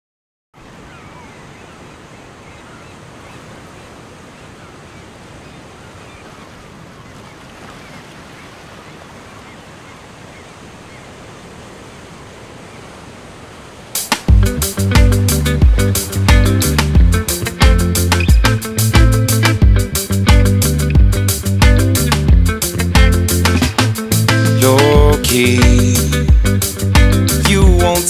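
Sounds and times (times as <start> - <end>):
surf rushing: 0.6 - 28.0.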